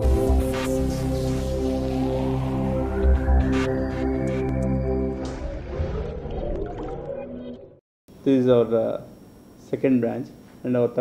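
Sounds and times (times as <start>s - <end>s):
reverberant intro music: 0.0s - 7.8s.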